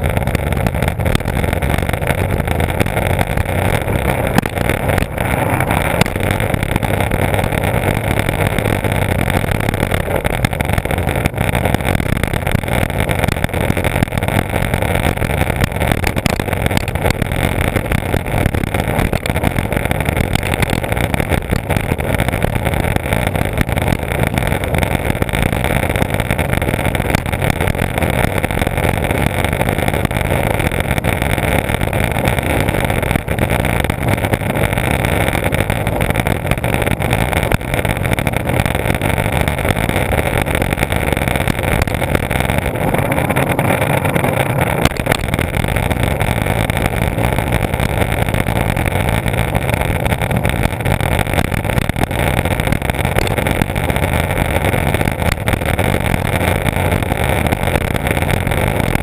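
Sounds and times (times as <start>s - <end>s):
skateboard wheels rolling on asphalt: 0.0s - 59.0s
wind buffeting camera: 0.0s - 59.0s.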